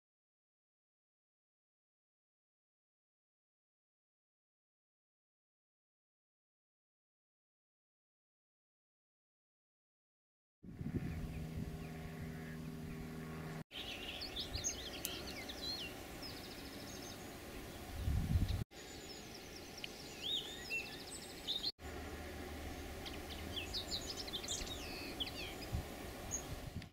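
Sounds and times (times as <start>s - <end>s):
outdoor background noise: 10.6s - 26.9s
low steady hum: 10.7s - 26.9s
songbirds chirping and trilling: 10.7s - 26.9s.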